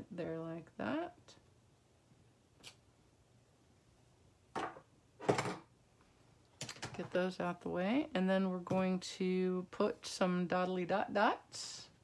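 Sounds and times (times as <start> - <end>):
objects knocking on table: 4.5 - 5.6.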